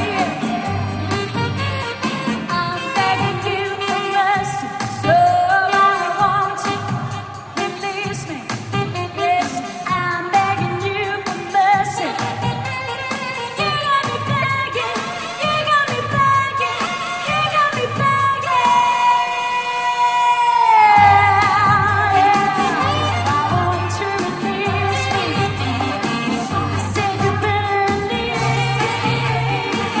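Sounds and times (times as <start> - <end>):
amplified backing track: 0.0 - 30.0
saxophone: 0.0 - 30.0
woman singing: 0.0 - 30.0.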